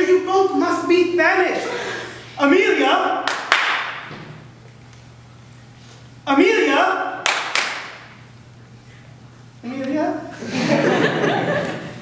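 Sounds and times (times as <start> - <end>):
hand claps echoing in hall: 3.2 - 4.4, 7.2 - 8.2.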